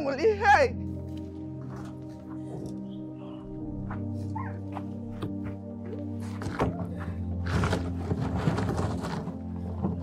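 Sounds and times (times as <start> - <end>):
sustained low chords: 0.7 - 7.5.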